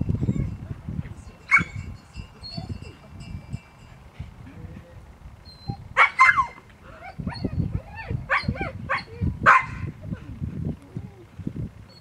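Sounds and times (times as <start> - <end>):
dog barking: 6.0 - 6.6, 8.3 - 9.9.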